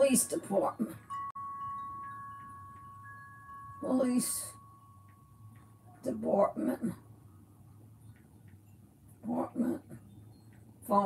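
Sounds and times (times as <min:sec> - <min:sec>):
faint chime-like notes: 0:00.7 - 0:07.4, 0:10.0 - 0:10.9
pitched ringing tone: 0:00.9 - 0:07.2.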